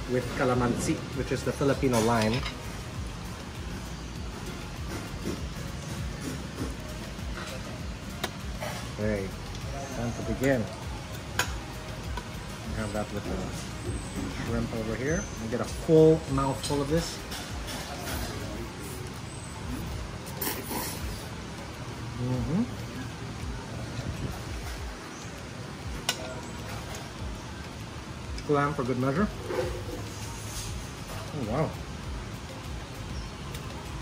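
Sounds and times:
fork scraping plate: 0:20.3 - 0:21.4, 0:29.4 - 0:30.8.

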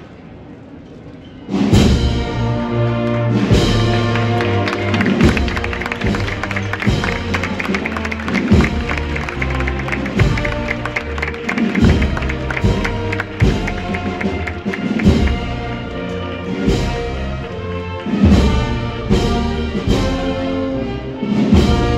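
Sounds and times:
brass band playing slow march: 0:01.7 - 0:21.9
rolling snare drum: 0:03.5 - 0:16.0
bass drum beat: 0:03.8 - 0:15.8.

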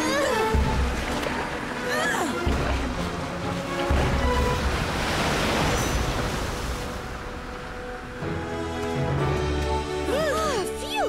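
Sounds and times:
cartoon background music: 0:00.0 - 0:04.8, 0:08.2 - 0:11.0
rushing water sound effect: 0:00.0 - 0:10.9.

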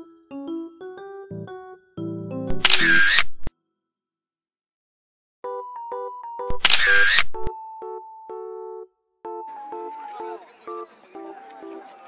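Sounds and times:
background music of simple notes: 0:00.0 - 0:03.1, 0:05.4 - 0:12.0
camera shutter sound effect: 0:02.5 - 0:03.5, 0:06.5 - 0:07.5.

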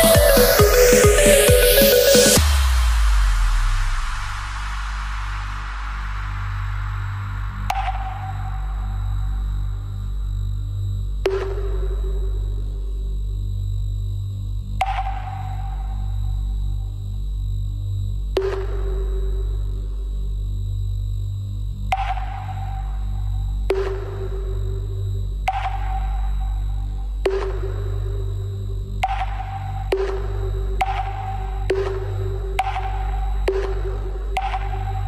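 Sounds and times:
deep bass drone: 0:00.0 - 0:35.0.

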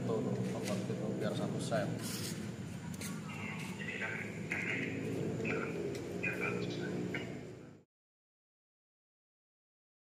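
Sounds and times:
low room hum: 0:00.0 - 0:07.8
indistinct voices talking: 0:02.9 - 0:07.5.

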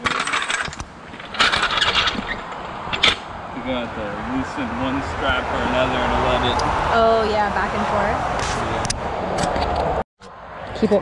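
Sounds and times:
metal parts clinking and rattling: 0:00.0 - 0:03.2.

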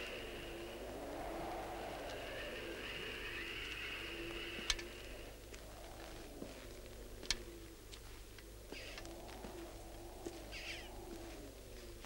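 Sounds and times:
low steady hum: 0:00.0 - 0:12.0
bird raspy calls: 0:08.7 - 0:09.2, 0:10.4 - 0:11.0.

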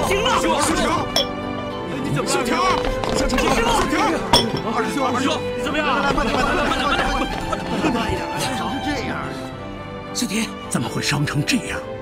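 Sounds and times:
dramatic background music: 0:00.0 - 0:12.0
teacup lid clinking on cup: 0:01.1 - 0:01.4, 0:04.3 - 0:04.7.

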